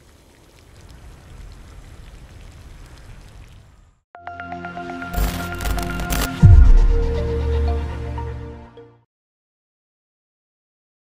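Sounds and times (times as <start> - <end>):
water pouring from hose onto grass: 0.0 - 3.8.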